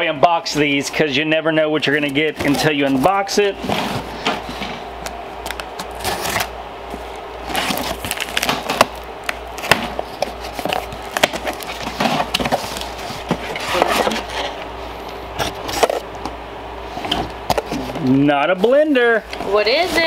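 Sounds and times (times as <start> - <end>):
tape and cardboard tearing: 5.4 - 14.6.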